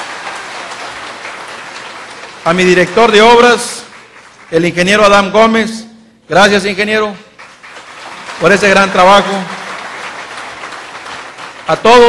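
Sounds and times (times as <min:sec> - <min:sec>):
audience applauding: 0:00.0 - 0:05.3, 0:07.3 - 0:12.0.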